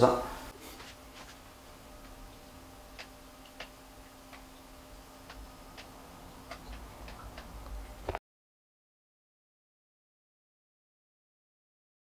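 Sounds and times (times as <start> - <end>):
low steady hum: 0.0 - 8.2.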